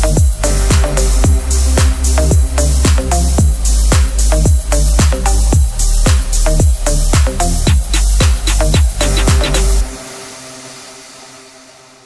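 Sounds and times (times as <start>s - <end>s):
held electronic synth chord: 0.0s - 12.0s.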